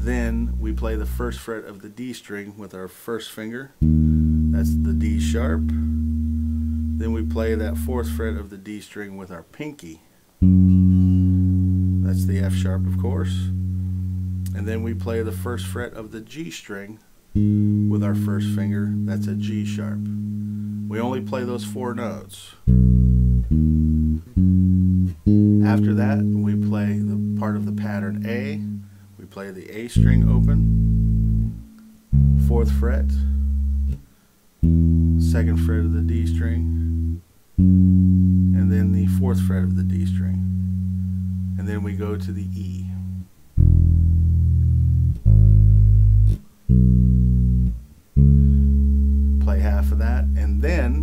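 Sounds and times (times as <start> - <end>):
electric bass notes: 0.0 - 1.5, 3.8 - 8.6, 10.4 - 16.2, 17.3 - 51.0.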